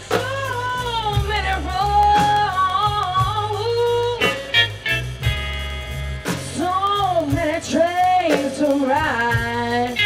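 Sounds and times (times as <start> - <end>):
woman singing blues: 0.0 - 5.0, 6.3 - 10.0
drums: 0.0 - 10.0
electric bass: 0.0 - 10.0.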